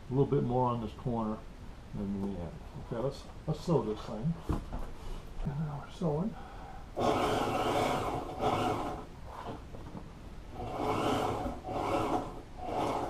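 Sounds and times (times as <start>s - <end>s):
electric sewing machine stitching: 7.0s - 9.6s, 10.5s - 13.0s.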